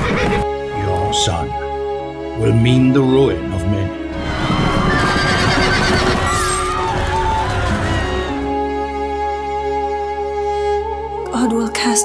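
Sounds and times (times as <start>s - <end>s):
trailer music: 0.0s - 12.0s.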